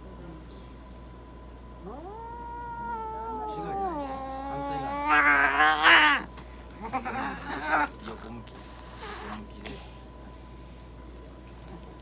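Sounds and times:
cat yowling: 1.8s - 8.0s.

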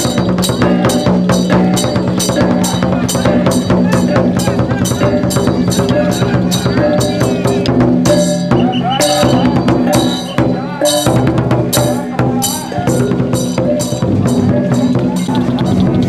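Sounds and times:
barrel drum beating: 0.0s - 16.0s
metal percussion: 0.0s - 16.0s.

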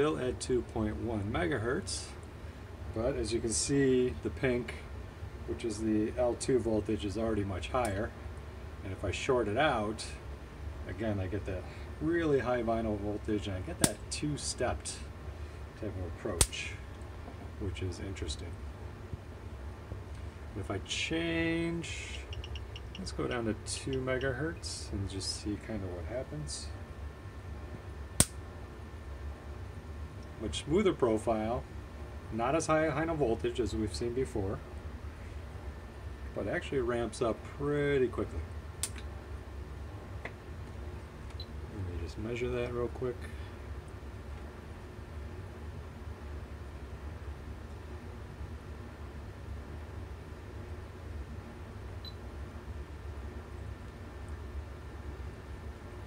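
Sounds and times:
steady low hum: 0.0s - 56.0s
sharp electrical snap: 16.3s - 16.7s, 28.2s - 28.4s, 38.8s - 39.1s.

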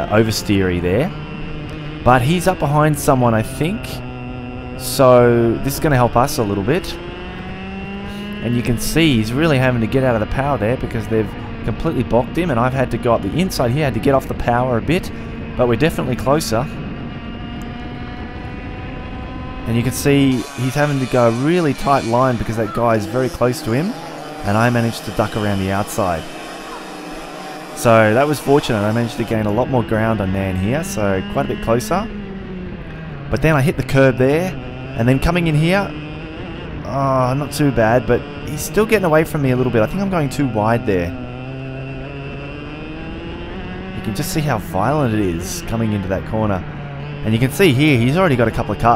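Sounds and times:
kart engine running: 0.0s - 48.9s
wind and track noise: 0.0s - 48.9s.

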